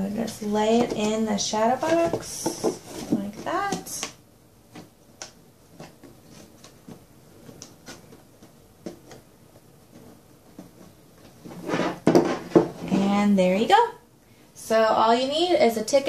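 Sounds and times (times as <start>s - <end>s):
box knocking and scraping on table: 0.7s - 4.0s, 11.4s - 13.0s.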